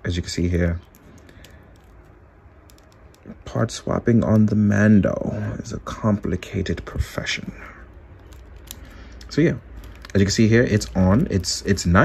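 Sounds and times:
fingers handling plastic figure: 0.7s - 5.0s, 6.2s - 12.0s.

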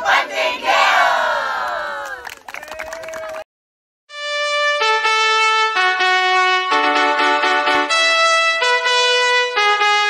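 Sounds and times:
group of students cheering: 0.0s - 3.4s.

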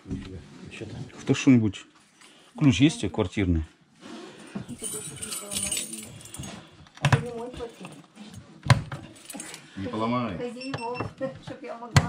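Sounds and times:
metal keys jangling: 4.7s - 6.7s, 9.0s - 9.7s.

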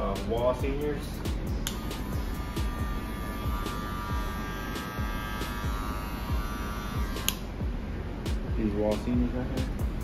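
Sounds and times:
background music beat: 0.0s - 10.0s
electric hair clipper humming: 1.6s - 7.6s.

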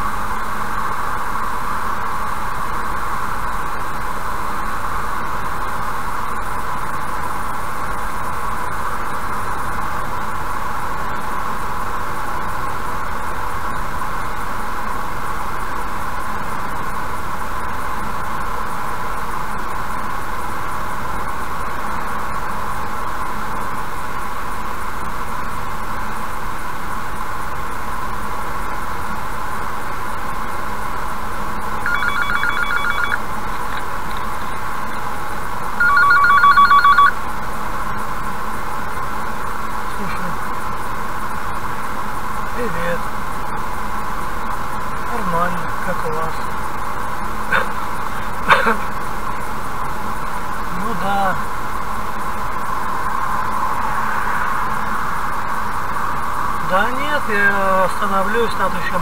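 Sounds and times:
car cabin road noise: 0.0s - 35.9s
phone ringtone: 31.8s - 33.2s, 35.8s - 37.2s.

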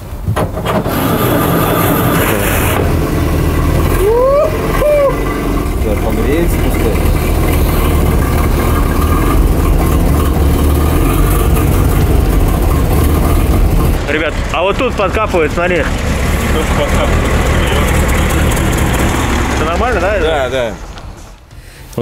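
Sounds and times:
engine running steadily: 0.0s - 21.5s.

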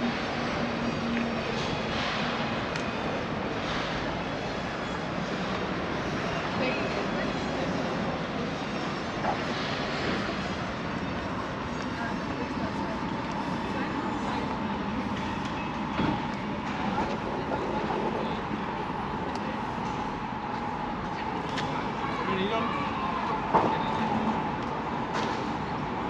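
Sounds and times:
voices of passers-by: 0.0s - 26.0s.

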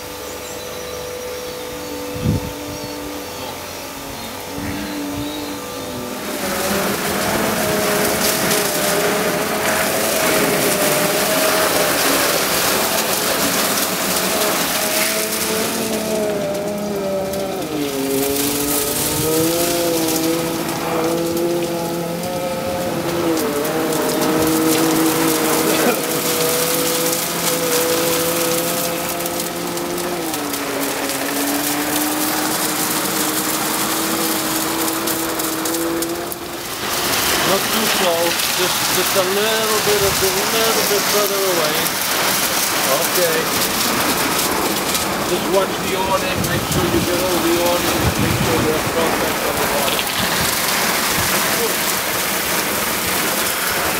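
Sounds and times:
motor hum: 0.0s - 53.9s
brush and spray splashing water: 4.4s - 53.9s.

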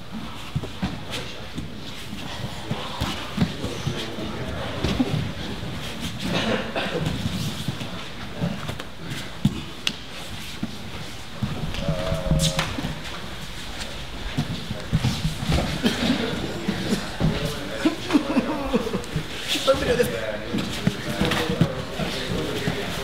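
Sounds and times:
wrestlers breathing and grunting: 0.0s - 23.0s.

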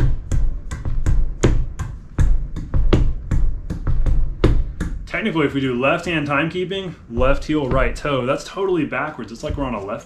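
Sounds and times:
heel and toe taps on rug: 0.0s - 5.1s, 7.2s - 8.2s.

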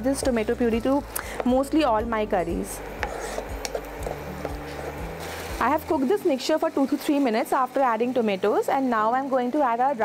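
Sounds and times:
wooden spatula scraping pan: 2.9s - 5.9s.

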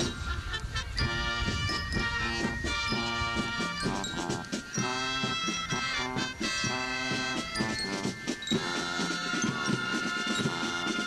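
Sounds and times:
brass notes: 0.0s - 11.0s
drum beat: 1.0s - 11.0s.

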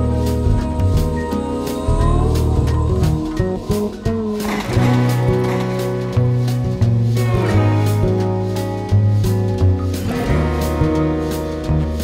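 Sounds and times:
drums steady beat: 0.0s - 12.0s
folk-rock band instrumental: 0.0s - 12.0s.

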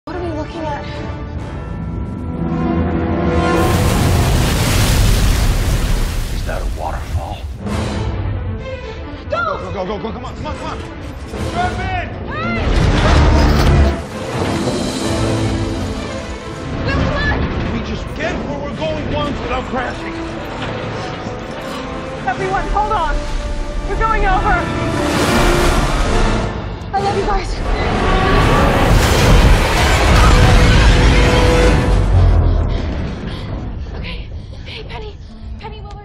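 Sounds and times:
dramatic music: 0.1s - 34.5s
rushing water: 3.4s - 7.7s, 21.7s - 26.8s
deep low rumble: 27.5s - 34.6s.

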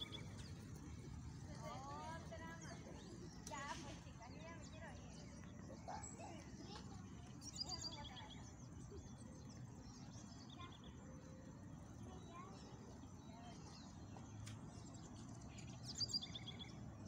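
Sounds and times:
distant voices: 0.0s - 9.8s.

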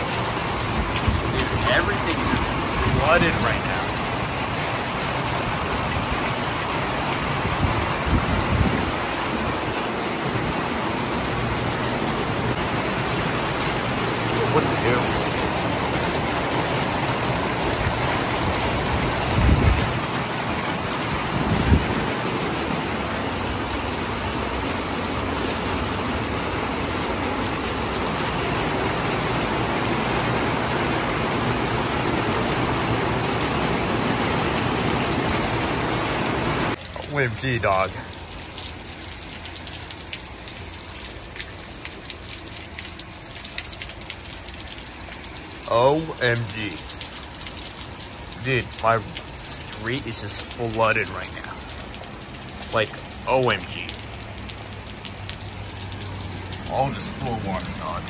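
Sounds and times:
heavy rain: 0.0s - 58.0s.

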